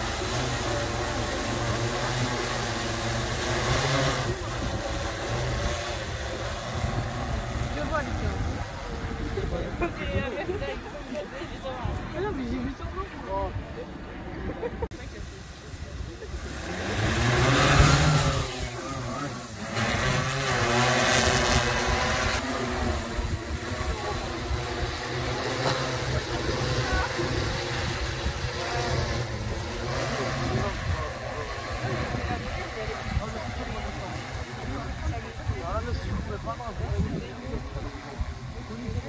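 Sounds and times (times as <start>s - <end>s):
drone rotors humming: 0.0s - 12.3s, 13.9s - 39.0s.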